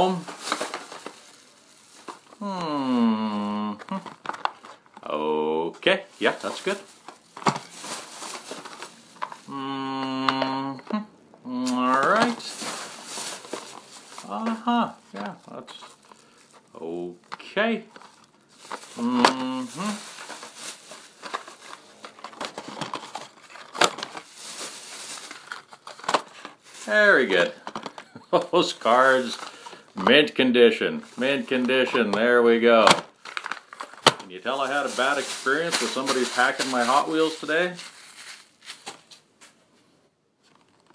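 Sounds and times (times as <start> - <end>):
plastic packaging crinkling: 0.0 - 5.2, 6.1 - 11.0, 11.7 - 30.4, 31.0 - 39.6, 40.4 - 40.9.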